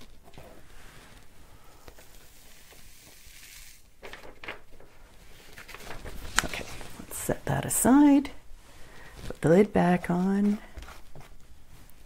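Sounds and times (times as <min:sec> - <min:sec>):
powder pouring hiss: 0:02.0 - 0:04.0.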